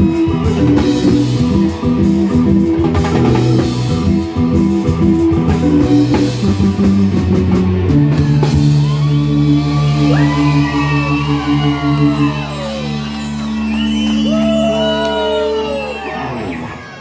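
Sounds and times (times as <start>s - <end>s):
high sliding notes: 8.2s - 17.0s.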